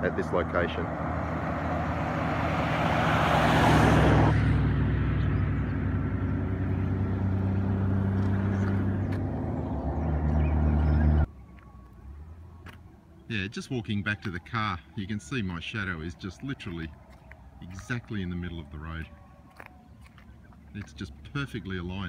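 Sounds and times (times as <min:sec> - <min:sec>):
vehicle passing by: 0:00.0 - 0:12.8
low engine hum: 0:00.0 - 0:22.0.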